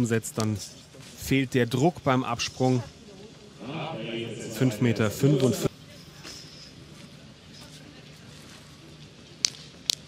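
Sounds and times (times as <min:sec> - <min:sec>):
faint distant voices: 0:02.6 - 0:09.4.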